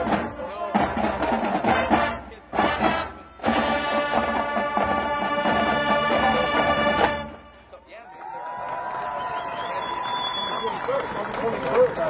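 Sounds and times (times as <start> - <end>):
marching band percussion hits: 0.0 - 7.4.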